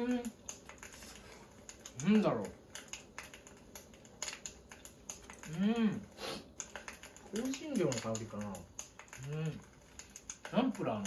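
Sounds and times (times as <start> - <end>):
faint irregular clicking: 0.0 - 11.0.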